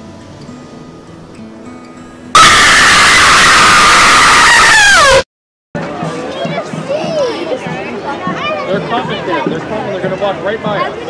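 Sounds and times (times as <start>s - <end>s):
loud harsh scream effect: 2.3s - 5.3s.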